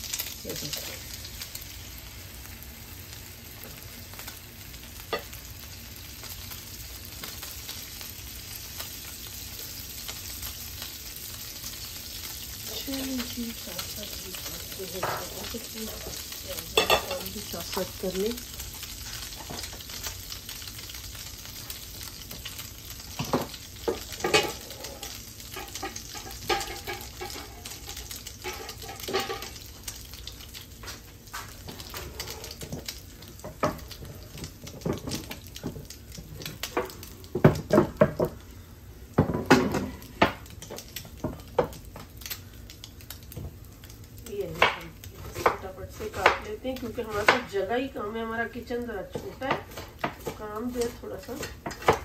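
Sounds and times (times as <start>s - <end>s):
food sizzling in a pan: 0.0s - 52.0s.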